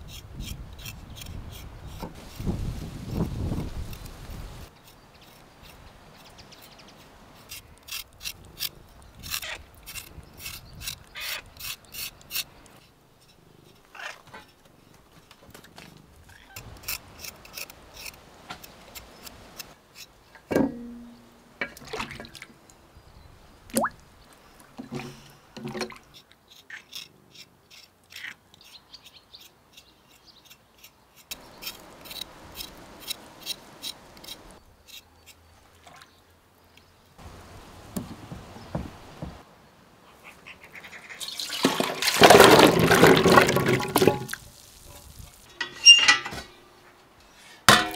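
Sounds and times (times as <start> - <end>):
knife scraping potato skin: 0.0 - 2.5, 3.1 - 14.2, 16.3 - 20.1, 26.1 - 35.4.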